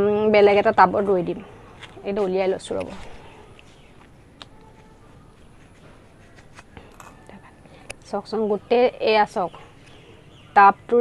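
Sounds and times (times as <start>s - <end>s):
soft rustling of soil: 1.8s - 8.2s.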